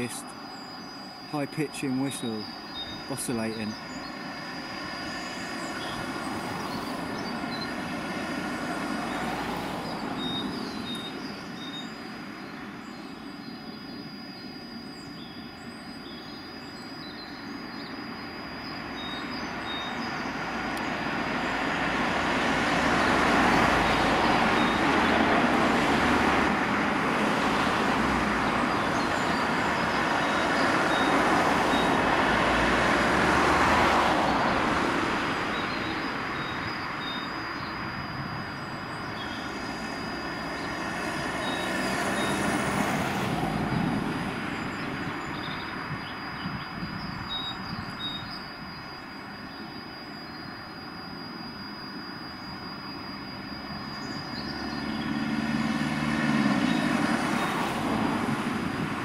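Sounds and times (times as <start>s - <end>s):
high-pitched whistle tone: 0.0s - 7.9s, 8.9s - 20.4s, 23.0s - 26.3s, 28.4s - 32.0s, 35.4s - 58.8s
lower tone beeping: 0.0s - 59.0s
passing traffic rush: 0.0s - 59.0s.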